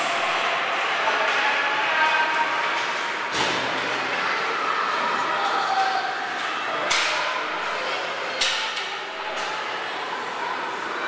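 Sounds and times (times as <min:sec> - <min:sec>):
overlapping crowd voices: 0:00.0 - 0:11.0.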